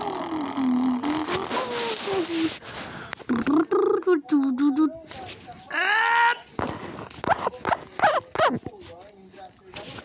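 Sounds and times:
person making raspy wordless sounds: 0.0s - 2.6s, 3.3s - 5.0s, 5.7s - 8.6s.

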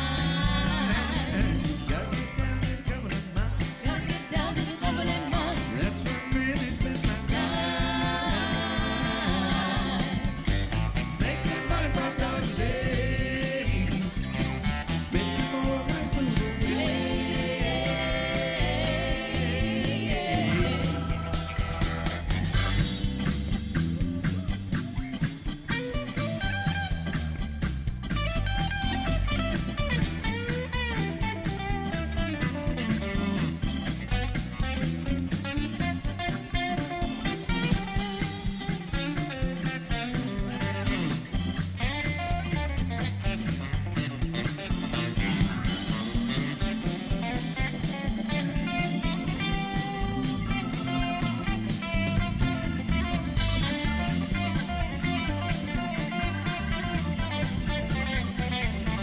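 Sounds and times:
drum kit steady beat: 0.0s - 59.0s
electric bass: 0.0s - 59.0s
electric guitar lead line: 0.0s - 59.0s.

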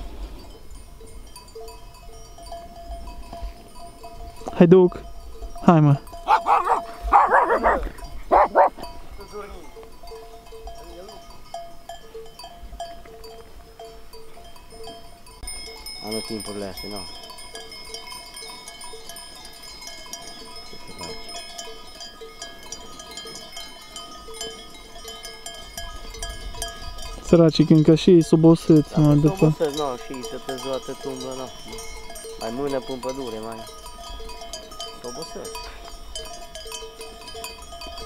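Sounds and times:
sheep bells ringing: 0.0s - 38.0s
loud sheep calls: 6.3s - 8.8s.

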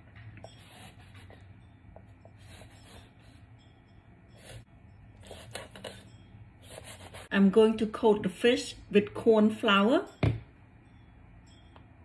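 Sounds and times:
low steady hum: 0.0s - 12.0s
knife scraping fish: 5.2s - 7.3s.

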